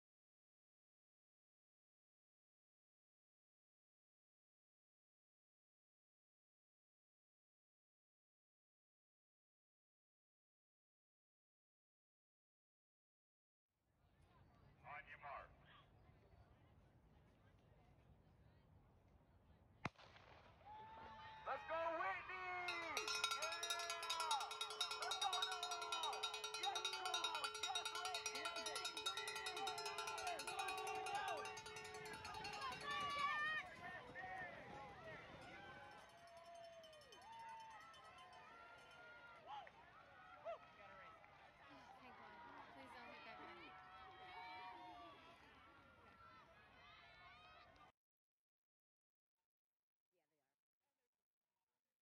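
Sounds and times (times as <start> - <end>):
spectators cheering and yelling: 20.7 - 47.7.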